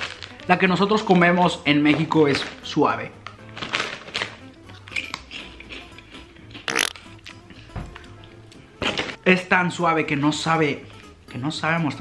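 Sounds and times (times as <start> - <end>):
chips crunching in foil bag: 0.0 - 0.6, 1.9 - 6.0, 6.6 - 7.1
background music: 0.0 - 12.0.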